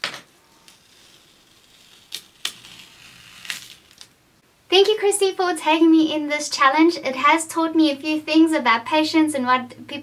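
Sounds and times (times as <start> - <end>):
tape peeling off paper: 0.6 - 4.2.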